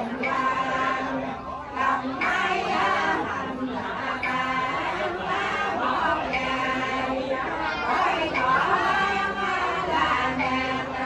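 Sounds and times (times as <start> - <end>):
voices chanting prayers: 0.0 - 11.0.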